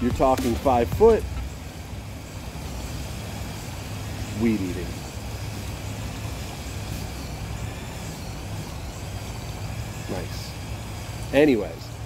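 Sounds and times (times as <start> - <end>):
string trimmer running: 0.0 - 12.0.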